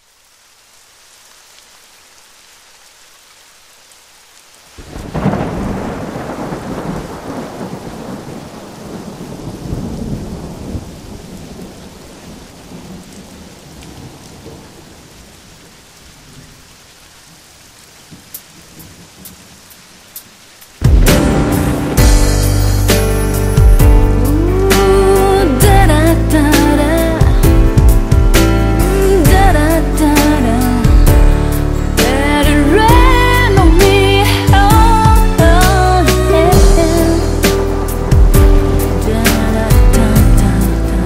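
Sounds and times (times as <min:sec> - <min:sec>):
rain hiss: 0:00.0 - 0:41.0
thunder rolling: 0:04.8 - 0:14.8, 0:20.8 - 0:40.7.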